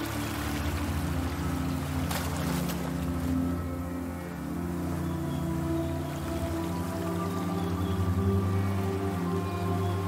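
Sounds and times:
ambient sustained tones: 0.0s - 10.0s.

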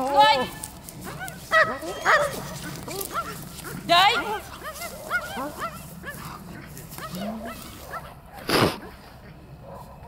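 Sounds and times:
dog whining yelps: 1.1s - 3.4s.

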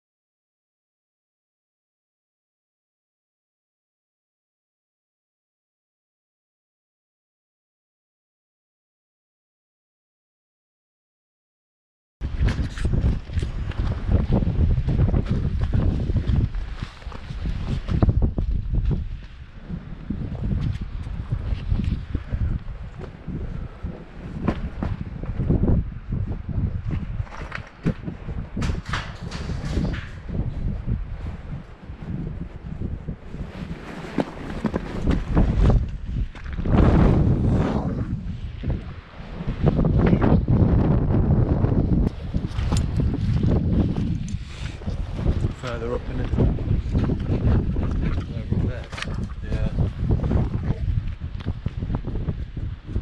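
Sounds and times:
wind gusting on microphone: 12.2s - 53.0s.

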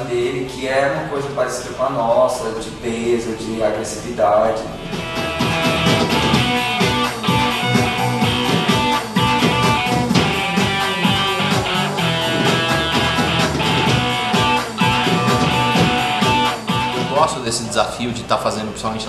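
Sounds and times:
strummed electric guitar: 4.8s - 17.4s
drum kit: 4.8s - 17.7s
strong drum hits: 4.9s - 17.4s.

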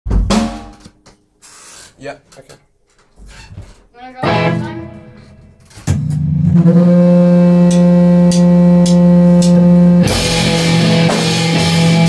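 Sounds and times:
drum kit hit with cymbal: 0.1s - 0.9s, 7.6s - 12.0s.

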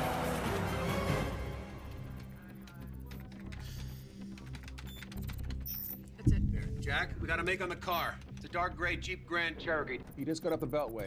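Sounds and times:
computer keyboard typing: 2.1s - 6.2s.

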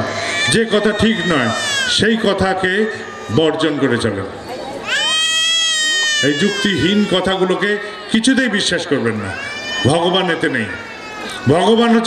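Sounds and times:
high-pitched wailing cry: 0.0s - 4.0s, 4.7s - 8.2s, 9.2s - 12.0s.

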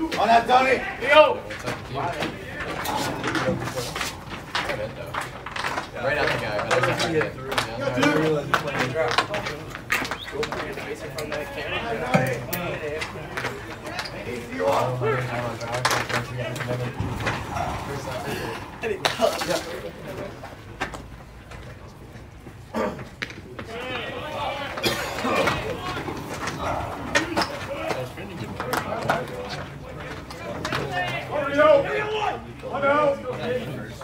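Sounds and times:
people talking and calling: 0.0s - 34.0s.

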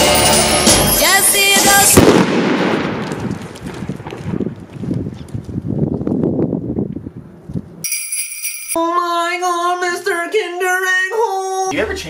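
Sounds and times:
firecracker bang: 1.8s - 4.6s
crackling pops: 2.0s - 5.5s.

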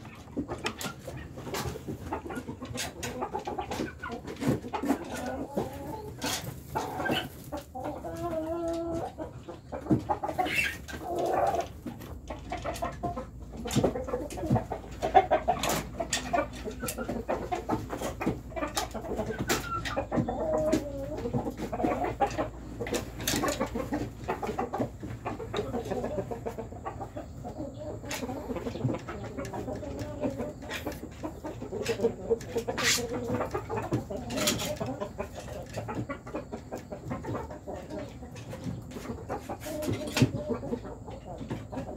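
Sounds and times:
young chickens clucking: 0.0s - 41.9s.

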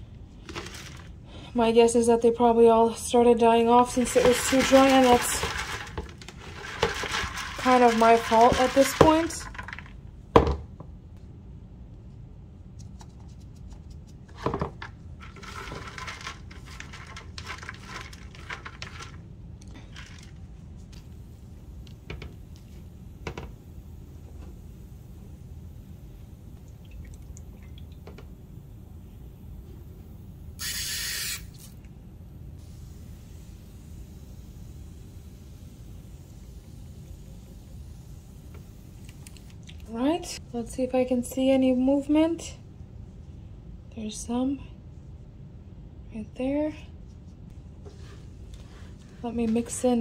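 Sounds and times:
spray bottle hiss: 30.6s - 31.8s, 32.6s - 39.6s.

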